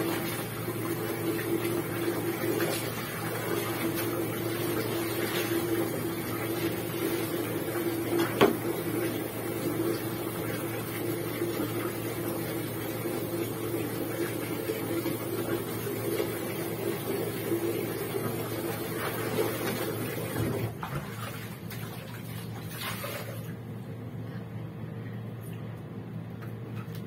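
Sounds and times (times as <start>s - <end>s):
wet laundry rustling: 0.0s - 12.6s
water splashing into basin: 18.9s - 23.6s.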